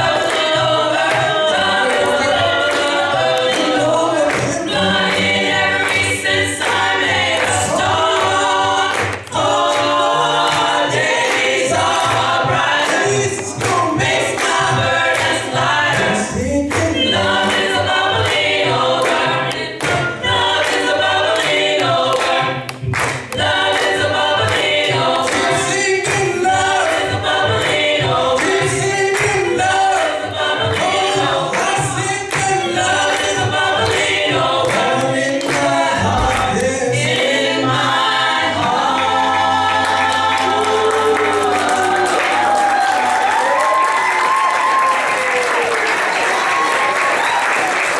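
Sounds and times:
a cappella gospel group singing: 0.0s - 44.3s.

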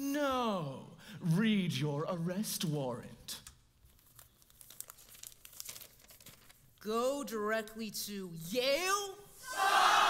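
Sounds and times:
paper rustling and crinkling: 3.8s - 6.8s.

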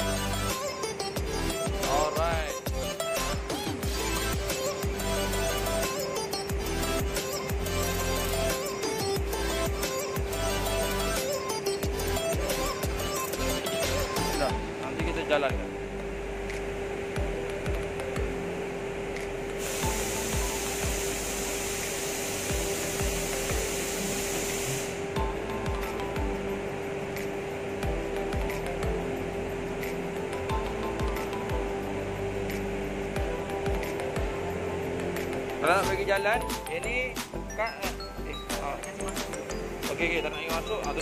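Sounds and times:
background music: 0.0s - 41.0s
loud hiss: 19.6s - 25.1s.

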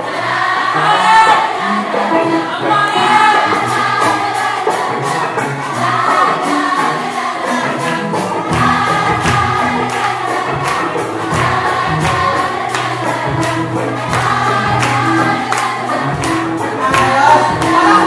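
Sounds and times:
many voices singing: 0.0s - 18.0s.

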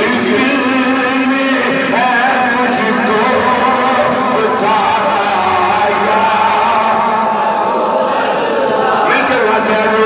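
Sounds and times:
man singing into a microphone: 0.0s - 7.4s, 9.0s - 10.0s.

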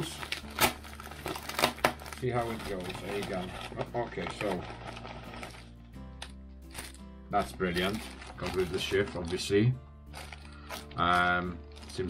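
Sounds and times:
plastic wrapping crinkling and tearing: 0.0s - 12.0s.

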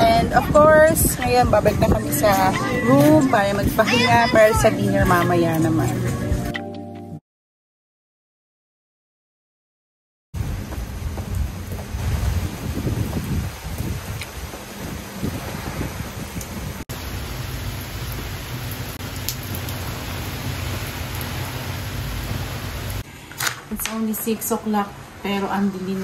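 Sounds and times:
steady rain falling: 10.4s - 23.0s.

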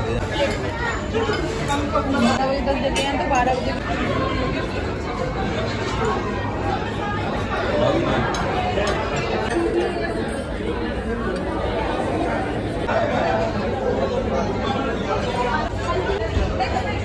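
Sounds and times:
restaurant crowd chatter: 0.0s - 17.0s.

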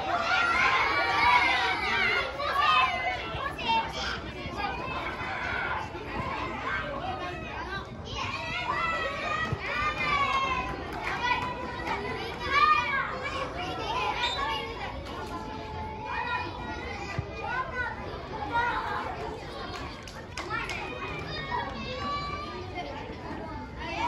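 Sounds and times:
children shouting: 0.0s - 23.0s.

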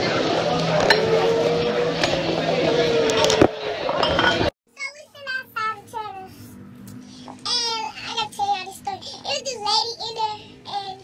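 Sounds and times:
many voices chattering: 0.0s - 4.5s
dishes and cutlery clinking: 3.2s - 4.5s.

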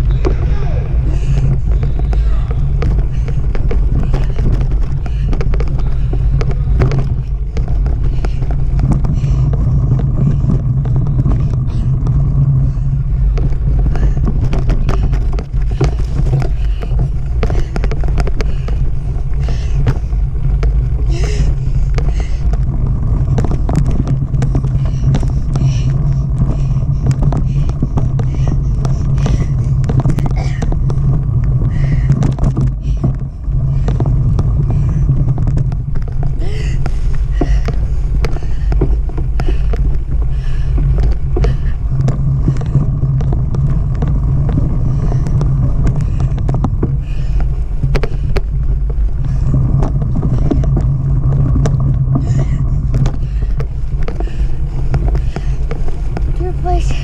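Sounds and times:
bike rumbling over dirt trail: 0.0s - 57.0s
tyres clicking and rattling: 0.0s - 57.0s.

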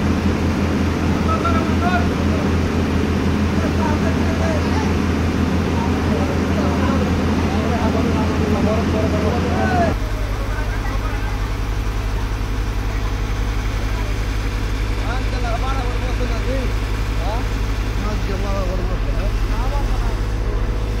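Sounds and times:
diesel engine droning: 0.0s - 21.0s.

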